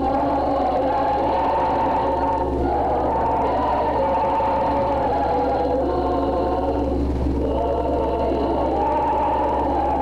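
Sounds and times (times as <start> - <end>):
choir chanting sustained chords: 0.0 - 10.0
low recording hum: 0.0 - 10.0.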